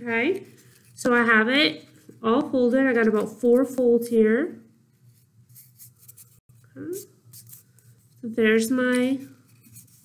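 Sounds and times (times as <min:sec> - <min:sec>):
paper rustling: 0:05.0 - 0:06.4.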